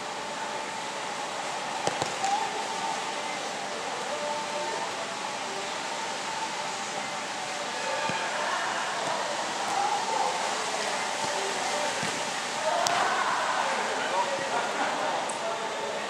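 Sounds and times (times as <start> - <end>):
steady background hiss: 0.0 - 16.0
distant players calling: 0.3 - 16.0.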